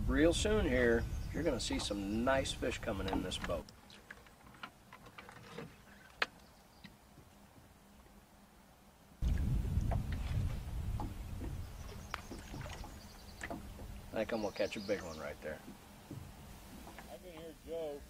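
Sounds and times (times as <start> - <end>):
fishing gear clicking in metal boat: 1.6 - 7.0, 10.9 - 17.1
low rumbling noise: 9.2 - 14.4.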